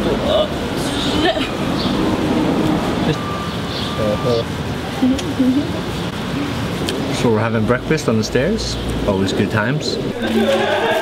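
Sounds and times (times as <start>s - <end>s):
vehicle running: 0.0s - 11.0s.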